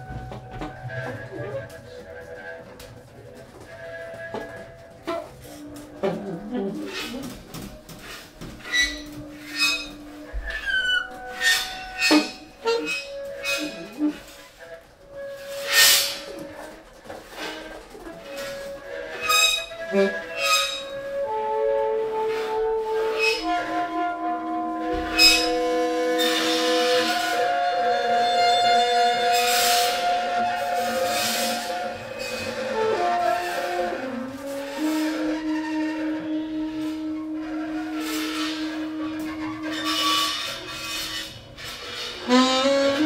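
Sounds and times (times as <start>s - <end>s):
alto saxophone: 0.0s - 43.0s
double bass: 0.0s - 43.0s.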